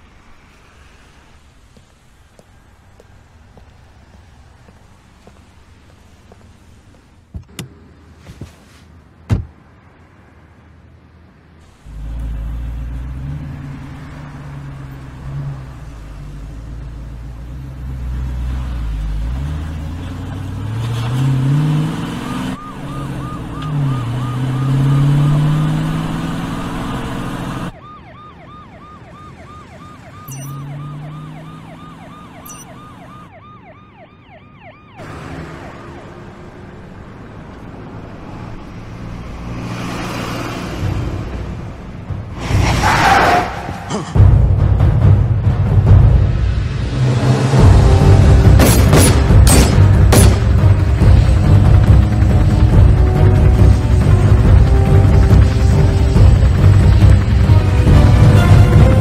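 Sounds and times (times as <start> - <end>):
car engine revving: 11.8 - 27.8, 30.5 - 32.4, 37.7 - 59.0
warbling emergency siren: 21.8 - 36.4.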